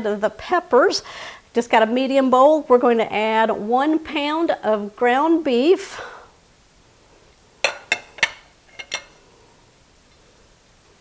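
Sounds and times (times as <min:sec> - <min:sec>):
plate clinking against glass bowl: 0:07.6 - 0:09.2.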